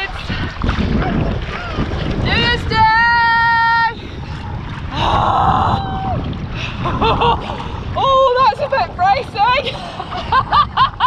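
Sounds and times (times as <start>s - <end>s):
sea water rushing: 0.0s - 11.0s
wind on microphone: 0.0s - 11.0s.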